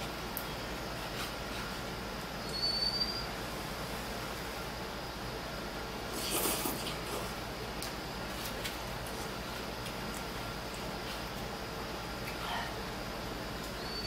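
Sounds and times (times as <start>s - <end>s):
person slurping noodles: 6.1s - 7.4s.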